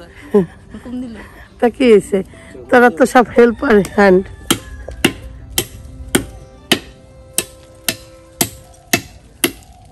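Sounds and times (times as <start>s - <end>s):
tool striking bamboo pole: 4.4s - 9.8s.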